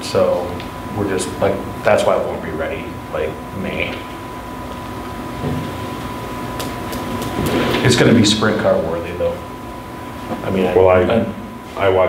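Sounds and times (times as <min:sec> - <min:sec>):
high whine: 0:00.0 - 0:12.0.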